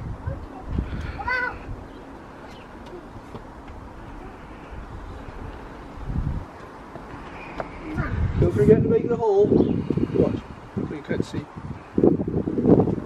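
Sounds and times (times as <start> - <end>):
low outdoor rumble: 0.0 - 13.0.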